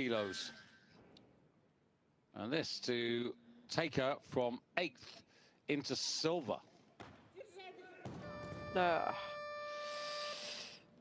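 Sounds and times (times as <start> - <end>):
electronic buzzer tone: 8.2 - 10.7.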